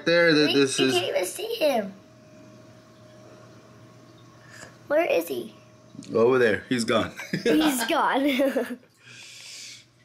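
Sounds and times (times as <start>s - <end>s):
aquarium pumps humming: 0.0s - 8.4s
light hiss: 9.0s - 10.0s.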